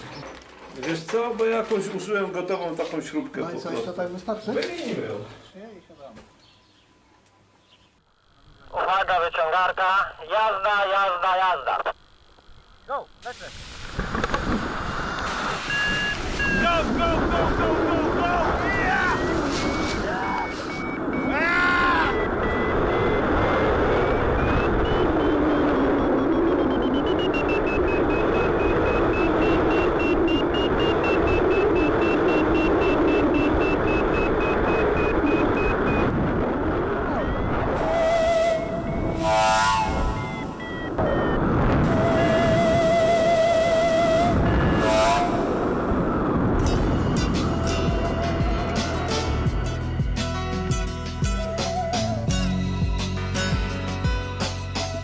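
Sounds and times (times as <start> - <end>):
wind on microphone: 13.9 - 48.9
music: 46.6 - 55.0.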